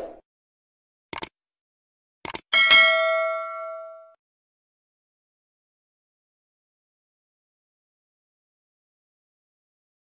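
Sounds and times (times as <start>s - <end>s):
quick double click: 1.1s - 1.3s, 2.2s - 2.5s
bell ding: 2.6s - 4.2s.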